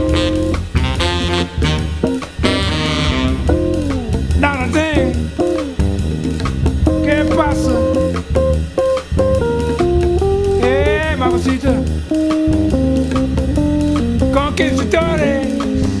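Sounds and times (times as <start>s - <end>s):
guitar lead with bent notes: 0.0s - 16.0s
jazz band playing: 0.0s - 16.0s.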